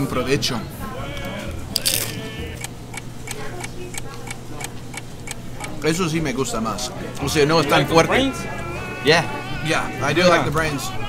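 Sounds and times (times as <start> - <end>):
faint voices: 0.0 - 11.0
chewing: 1.1 - 5.8
crunchy bite: 1.8 - 2.2.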